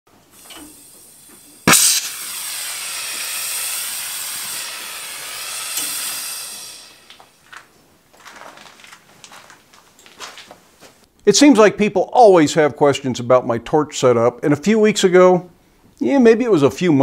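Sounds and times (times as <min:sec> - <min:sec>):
faint gas hiss: 0:00.2 - 0:08.1, 0:15.4 - 0:16.2
torch flame hissing: 0:00.4 - 0:07.4
ignition pop: 0:01.7 - 0:02.6.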